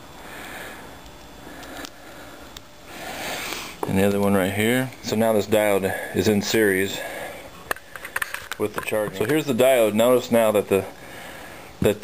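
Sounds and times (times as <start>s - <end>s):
breathing close to microphone: 0.2s - 3.8s, 7.0s - 7.6s, 10.8s - 11.8s
faint handling noise: 7.6s - 9.7s.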